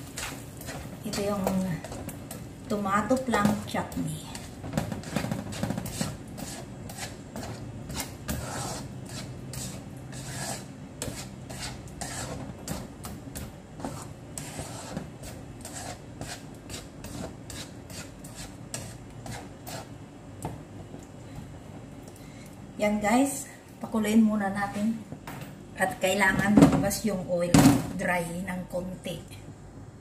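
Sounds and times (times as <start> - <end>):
spatula scraping a wok: 0.0 - 20.0.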